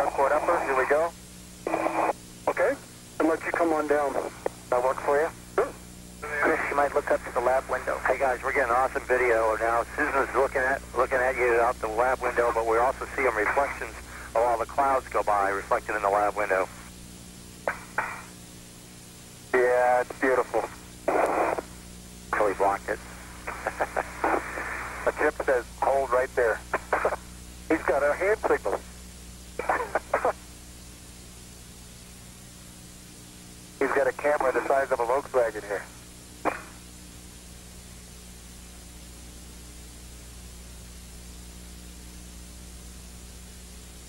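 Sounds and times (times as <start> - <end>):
voices over radio: 0.0 - 16.9, 19.5 - 21.7, 22.3 - 28.9, 29.6 - 30.4, 33.8 - 36.7
steady hum and hiss: 0.0 - 44.0.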